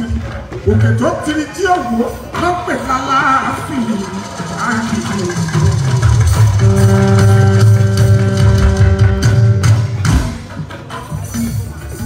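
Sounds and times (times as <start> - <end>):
drums: 0.0 - 12.0.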